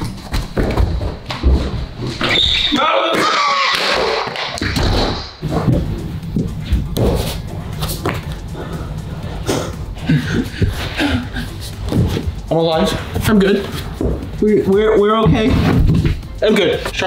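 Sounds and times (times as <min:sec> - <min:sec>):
background music: 0:04.0 - 0:17.0.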